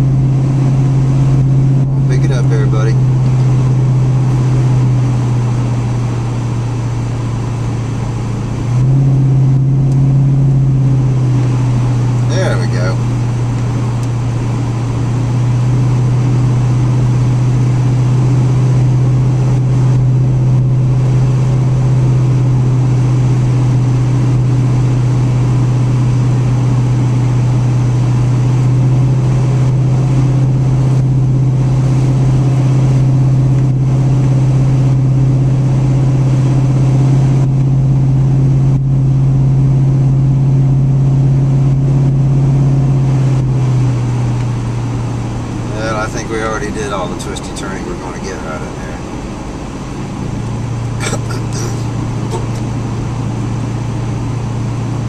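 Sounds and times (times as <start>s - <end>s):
low engine drone: 0.0s - 55.0s
road and tyre noise: 0.0s - 55.0s.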